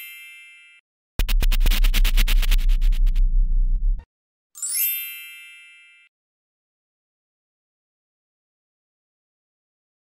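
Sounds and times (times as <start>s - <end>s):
bright chime: 4.6s - 6.1s.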